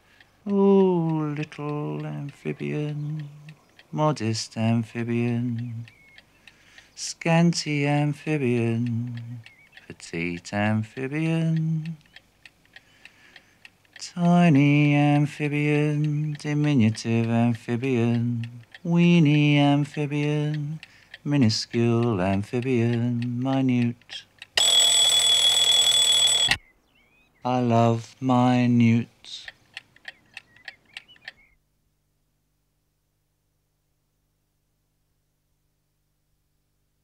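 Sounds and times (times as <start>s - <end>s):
faint regular ticking: 0.0s - 26.6s, 28.6s - 31.5s.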